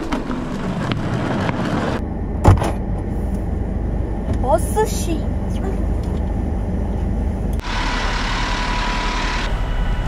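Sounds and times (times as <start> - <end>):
road noise: 0.0 - 10.0
vehicle engine rumble: 0.0 - 10.0.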